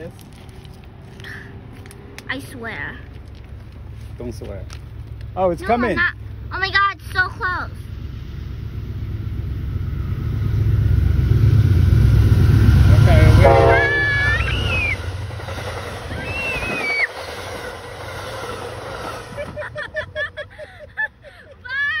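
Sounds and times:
train wheels rumbling on rails: 0:09.0 - 0:20.5
voices: 0:12.9 - 0:15.0.

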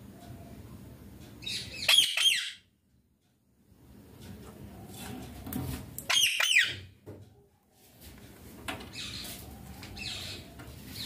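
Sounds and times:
parakeet shrill calls: 0:01.4 - 0:02.7, 0:06.1 - 0:06.9.

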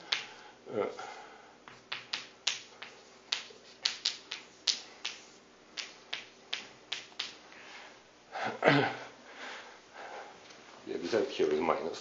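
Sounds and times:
chalk tapping on blackboard: 0:01.7 - 0:07.4.

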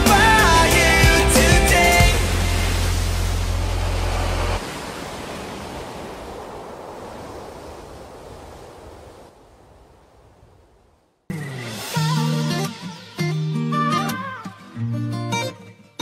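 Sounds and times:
surf washing against rocks: 0:01.4 - 0:10.9.

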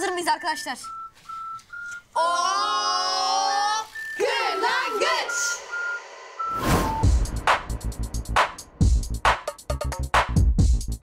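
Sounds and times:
short electronic beeps: 0:00.0 - 0:02.1, 0:03.9 - 0:07.3
heavy bass swell: 0:05.5 - 0:10.1.

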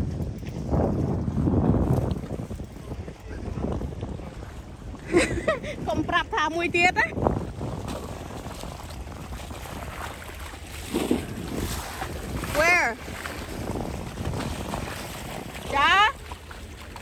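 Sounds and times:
small waves lapping: 0:00.0 - 0:17.0
wind buffeting microphone: 0:00.0 - 0:17.0.

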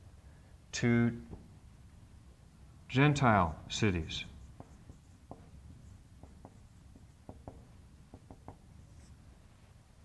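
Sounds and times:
marker writing on whiteboard: 0:04.1 - 0:09.4.

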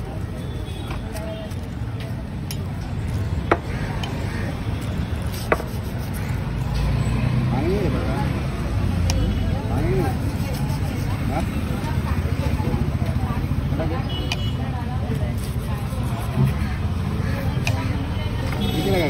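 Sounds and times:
road traffic rumble: 0:00.0 - 0:19.0
people talking: 0:07.4 - 0:19.0.

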